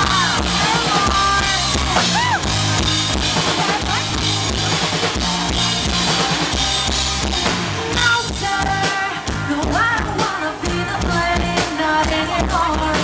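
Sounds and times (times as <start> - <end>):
live rock band playing: 0.0 - 13.0.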